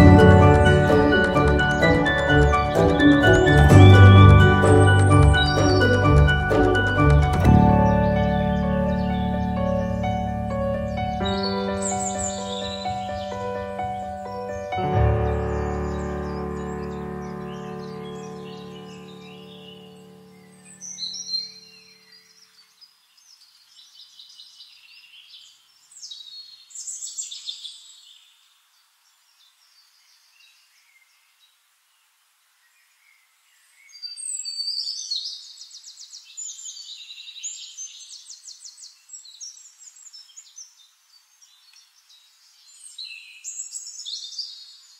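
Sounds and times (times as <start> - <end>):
birds chirping and trilling: 0.0 - 31.6, 32.6 - 44.9.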